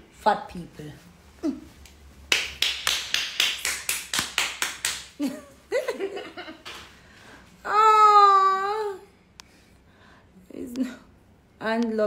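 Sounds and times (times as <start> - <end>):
hand claps: 2.3 - 5.3.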